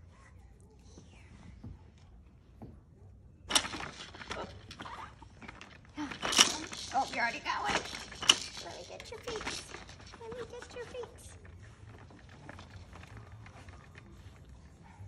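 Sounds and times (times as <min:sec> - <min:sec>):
plastic toys clattering and knocking: 0:03.5 - 0:14.5.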